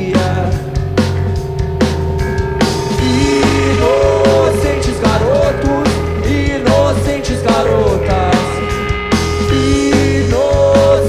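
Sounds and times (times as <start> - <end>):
bass guitar: 0.0 - 11.0
drums: 0.0 - 11.0
electric guitar bent notes: 0.0 - 11.0.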